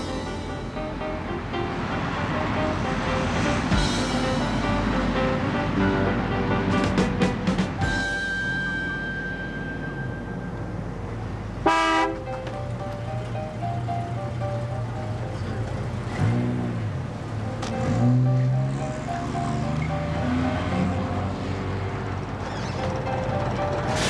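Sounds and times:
background score music: 0:00.0 - 0:21.9, 0:22.8 - 0:24.0
short car horn toot: 0:11.7 - 0:12.2.

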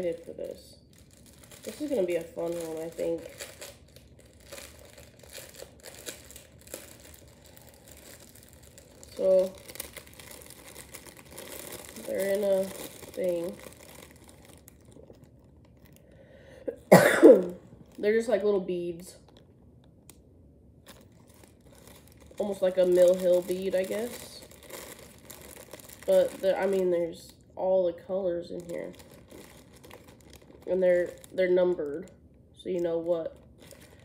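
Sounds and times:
plastic packaging crinkling: 0:00.0 - 0:16.5, 0:17.4 - 0:20.2, 0:20.8 - 0:27.4, 0:28.0 - 0:34.0.

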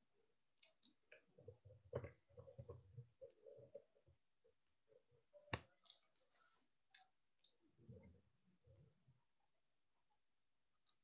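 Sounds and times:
faint ticks and rustles: 0:00.5 - 0:11.0.

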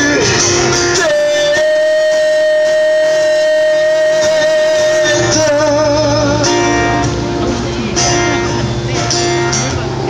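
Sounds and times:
faint acoustic guitar: 0:00.0 - 0:10.0.

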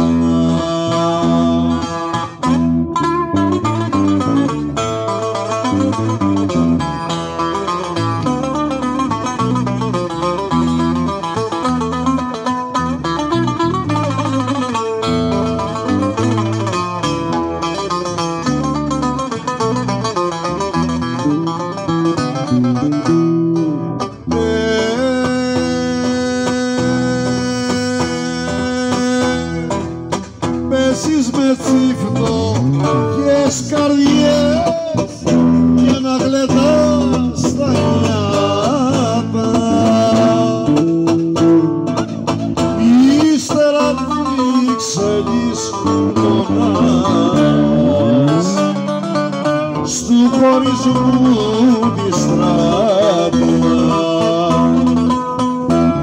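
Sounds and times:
plucked string folk music: 0:00.0 - 0:56.0.

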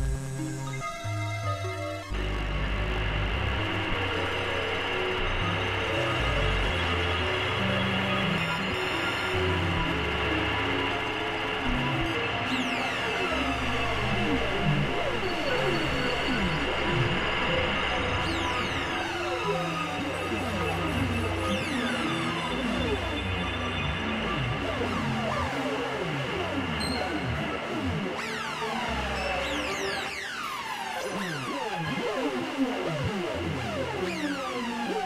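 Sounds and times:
experimental synthesizer music: 0:00.0 - 0:35.0.

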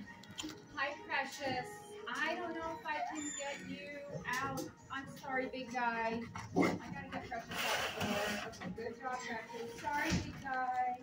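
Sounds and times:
dogs whining and yelping: 0:02.9 - 0:04.4.

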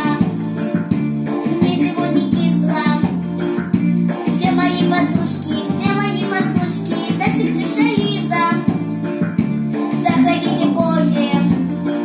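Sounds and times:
girl singing pop song: 0:00.0 - 0:12.0
instrumental backing track: 0:00.0 - 0:12.0.

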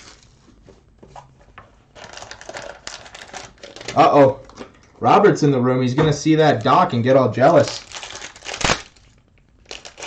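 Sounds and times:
foil wrapper crinkling: 0:00.0 - 0:00.5, 0:01.9 - 0:04.6, 0:06.5 - 0:10.0.

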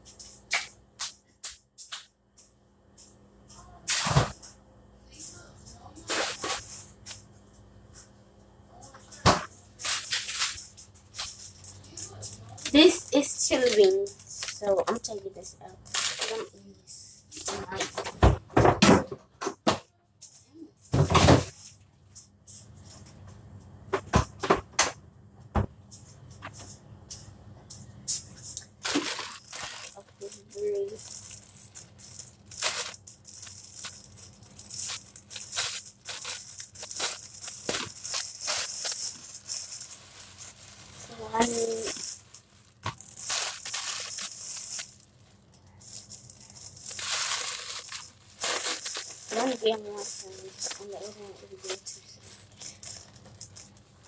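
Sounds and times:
plastic bags crinkling: 0:09.8 - 0:16.6, 0:28.6 - 0:54.0.

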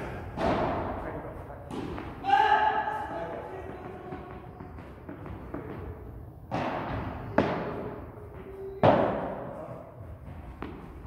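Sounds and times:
ball bouncing on court: 0:01.7 - 0:02.5, 0:03.2 - 0:09.5, 0:10.2 - 0:11.0.

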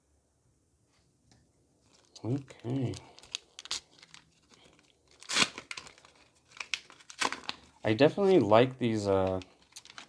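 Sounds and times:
wrapper crinkling: 0:01.8 - 0:10.0
paper wrapper tearing: 0:01.9 - 0:10.0.

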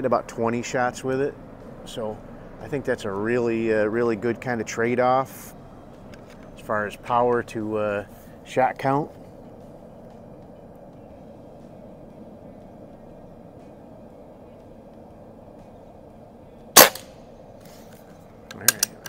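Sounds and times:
air rifle shot: 0:16.8 - 0:17.2.

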